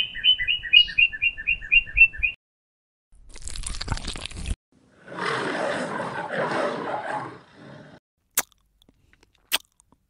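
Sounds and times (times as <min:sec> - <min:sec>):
lion growling: 0:04.9 - 0:08.0.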